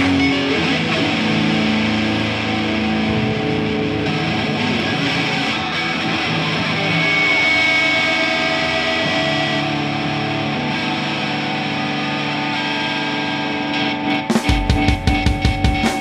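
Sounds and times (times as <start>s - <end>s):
distorted electric guitar chords: 0.0s - 16.0s.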